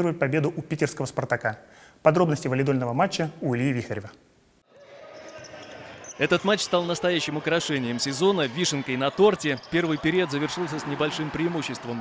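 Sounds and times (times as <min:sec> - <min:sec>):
indoor hall noise: 0:04.6 - 0:12.0.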